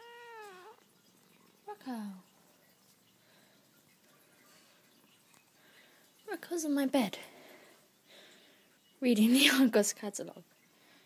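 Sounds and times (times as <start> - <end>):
cat meowing: 0.0 - 0.8.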